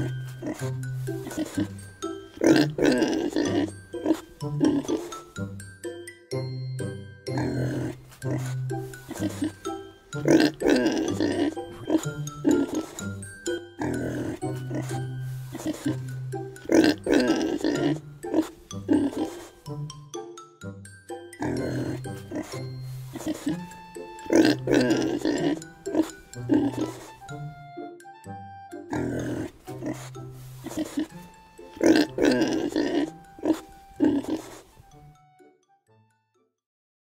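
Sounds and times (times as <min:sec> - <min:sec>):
wet chewing of corn: 0:00.0 - 0:01.8, 0:07.8 - 0:09.7, 0:13.8 - 0:16.0, 0:21.4 - 0:23.7, 0:24.3 - 0:27.3, 0:28.9 - 0:34.8
background music: 0:00.0 - 0:36.6.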